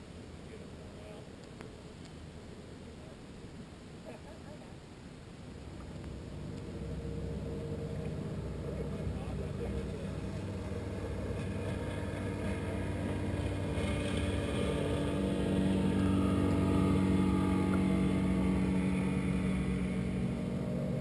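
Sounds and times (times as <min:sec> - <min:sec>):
motorboat engine droning: 0:05.2 - 0:21.0.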